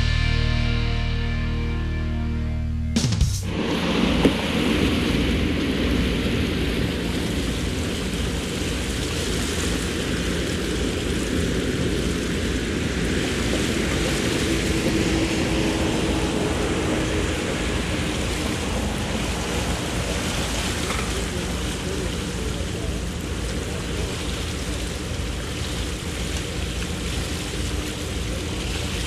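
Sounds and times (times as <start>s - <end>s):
boat engine low drone: 0.0s - 29.0s
water and wind rushing: 3.4s - 29.0s.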